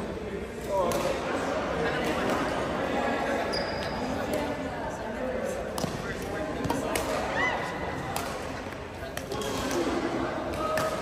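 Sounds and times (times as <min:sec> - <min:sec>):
rackets hitting shuttlecock: 0:00.7 - 0:01.3, 0:05.7 - 0:11.0.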